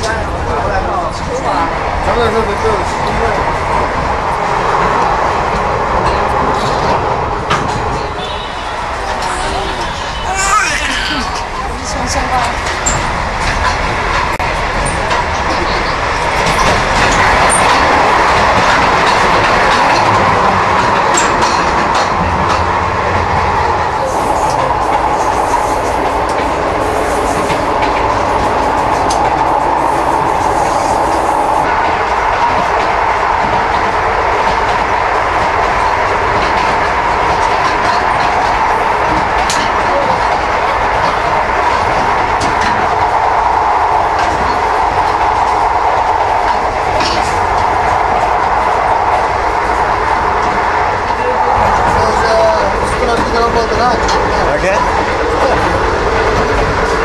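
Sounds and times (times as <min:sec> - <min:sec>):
train rumbling on rails: 0:00.0 - 0:57.0
wheels clicking over rail joints: 0:02.1 - 0:57.0.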